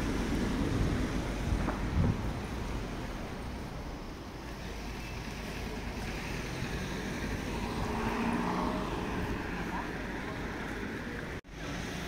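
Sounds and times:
faint voices: 0:04.4 - 0:12.0.

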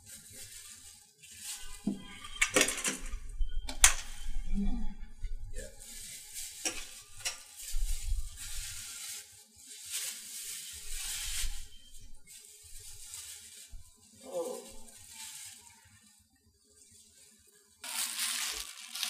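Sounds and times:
plastic bag rustling and crinkling: 0:00.0 - 0:19.0.

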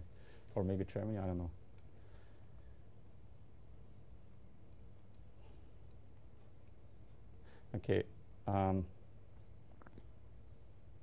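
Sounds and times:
low steady room hum: 0:00.0 - 0:11.0.

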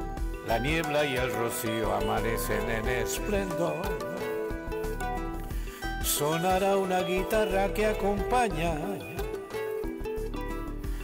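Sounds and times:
instrumental backing music: 0:00.0 - 0:11.0.

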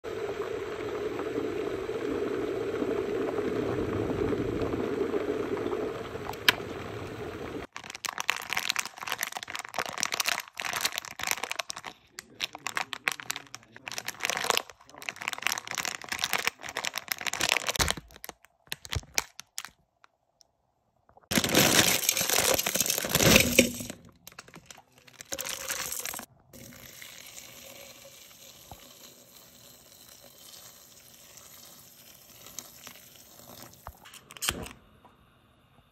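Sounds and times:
kettle water bubbling: 0:00.0 - 0:07.7
plastic wrapper crinkling: 0:07.7 - 0:20.2, 0:21.2 - 0:26.3.

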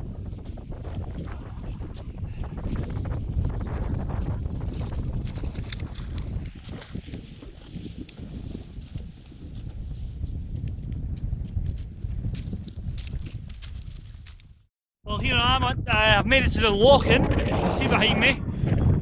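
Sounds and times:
wind buffeting microphone: 0:00.0 - 0:19.0
footsteps crunching in snow: 0:04.6 - 0:14.5.

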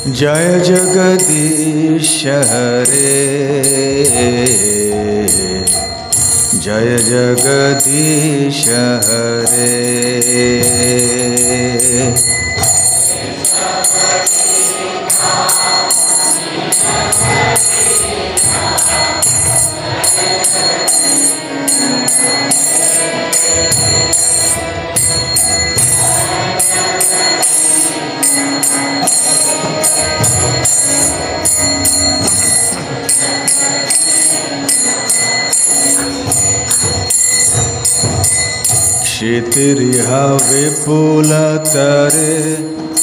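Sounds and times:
hand cymbals struck rhythmically: 0:00.0 - 0:43.0.

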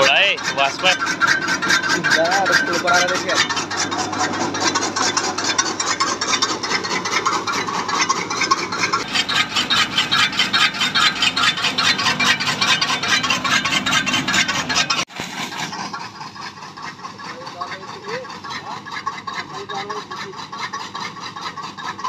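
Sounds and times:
chaff cutter chopping stalks: 0:00.0 - 0:22.0.

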